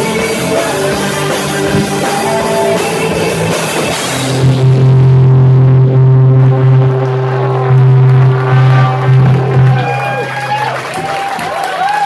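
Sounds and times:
rock band low note ringing: 0.0 - 11.1.

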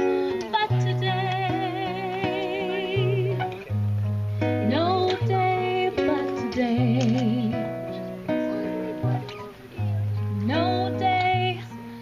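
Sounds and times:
woman singing: 0.0 - 3.6, 4.6 - 7.8, 10.3 - 11.9
acoustic guitar: 0.0 - 12.0.

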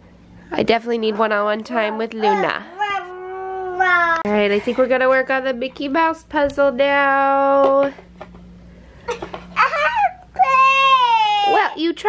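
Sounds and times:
toddler whining: 2.2 - 4.2, 9.1 - 11.7.

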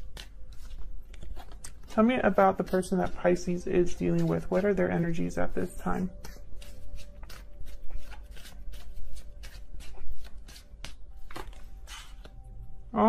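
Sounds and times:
cards being shuffled: 0.0 - 3.2, 3.9 - 12.4.

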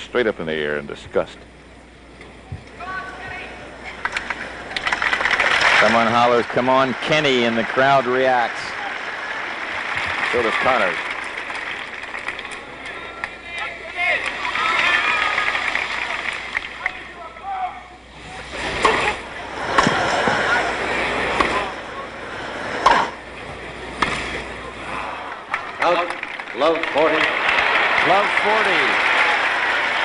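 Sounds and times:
crowd murmuring and chattering: 1.6 - 30.0
tennis ball hitting rackets: 22.8 - 23.2, 24.0 - 24.4.

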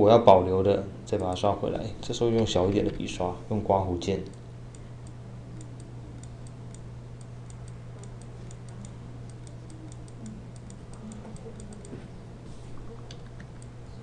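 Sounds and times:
low electrical hum: 0.0 - 14.0
computer mouse clicking: 4.3 - 12.0.

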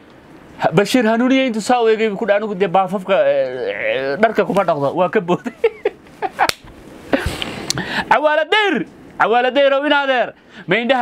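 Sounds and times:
sharp crack: 6.4 - 6.8.

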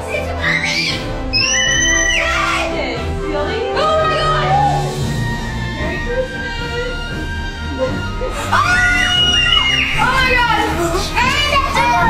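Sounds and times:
children squealing and shouting: 0.0 - 2.8, 4.4 - 12.0.

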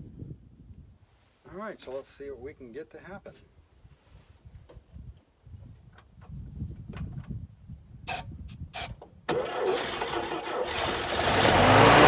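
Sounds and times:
spray can hissing: 8.1 - 8.9.

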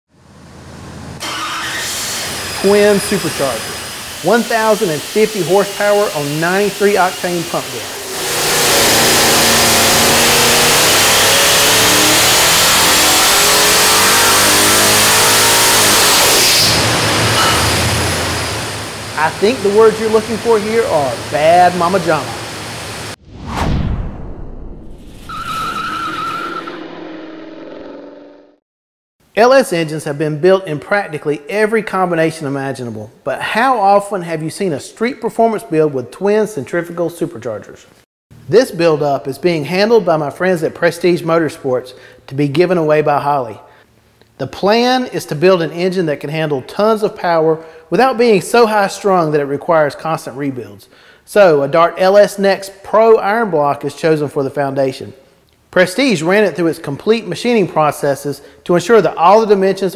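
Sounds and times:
wavering tire squeal: 1.2 - 3.8, 8.0 - 18.7, 25.2 - 28.6
supercharger hiss: 1.2 - 23.2
supercharged engine running: 5.8 - 23.2, 26.6 - 28.6.

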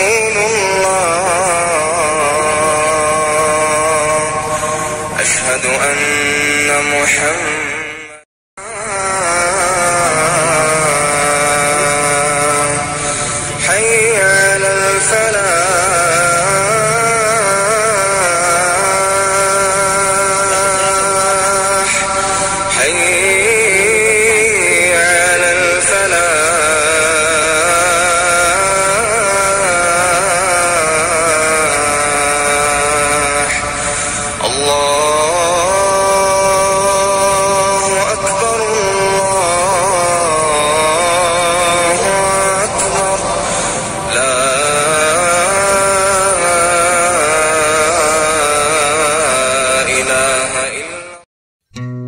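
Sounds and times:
man chanting long wavering notes: 0.0 - 51.2.

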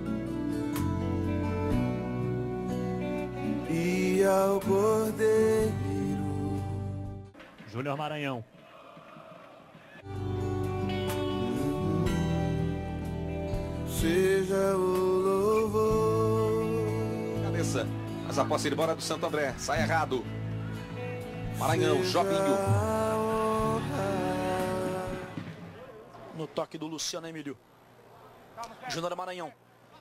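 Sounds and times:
christian worship music: 0.0 - 7.4, 8.5 - 26.1
person singing sustained notes: 3.4 - 7.2, 10.1 - 13.3, 13.9 - 17.4, 21.8 - 25.4.

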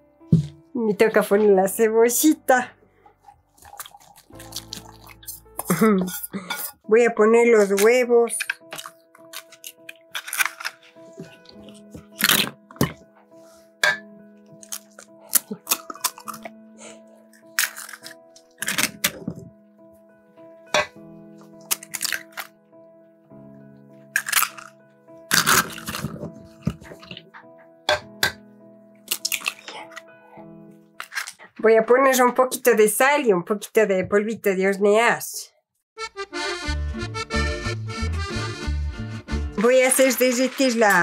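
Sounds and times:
soft background music: 0.0 - 35.4, 36.0 - 41.0
eggs cracking on bowl: 3.6 - 6.7, 7.6 - 13.0, 14.6 - 16.5, 17.4 - 19.4, 21.6 - 22.5, 24.1 - 24.7, 25.3 - 27.2, 29.1 - 30.0.

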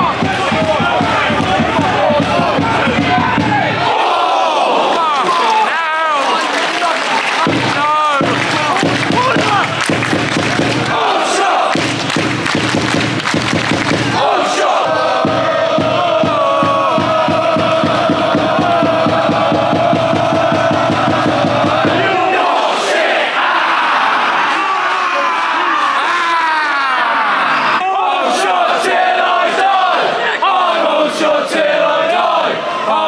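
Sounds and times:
crowd holding long oooooo: 0.0 - 12.1, 12.7 - 33.0
football crowd chanting: 0.0 - 26.2, 27.2 - 33.0
crowd mass shout: 0.0 - 33.0.

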